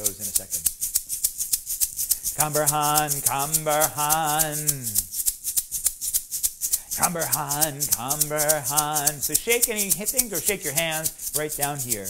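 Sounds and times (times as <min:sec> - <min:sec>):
hand shaker shaken rhythmically: 0:00.0 - 0:12.0.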